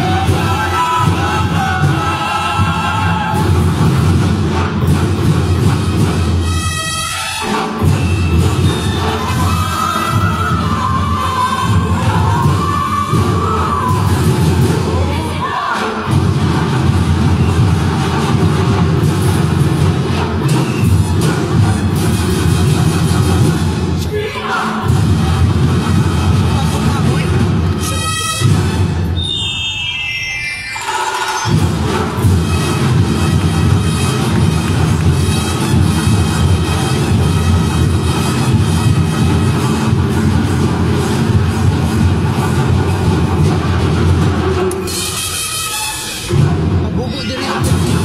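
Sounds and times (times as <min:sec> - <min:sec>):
chorus of voices singing: 0:00.0 - 0:04.2, 0:08.9 - 0:16.4, 0:24.0 - 0:25.9
loud music with pulsing drum beat: 0:00.0 - 0:06.6, 0:07.4 - 0:24.1, 0:24.7 - 0:29.3, 0:30.7 - 0:48.0.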